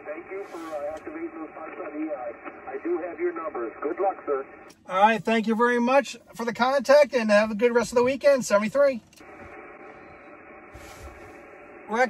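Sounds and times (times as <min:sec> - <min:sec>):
muffled radio static hiss: 0:00.0 - 0:05.9, 0:09.2 - 0:12.0.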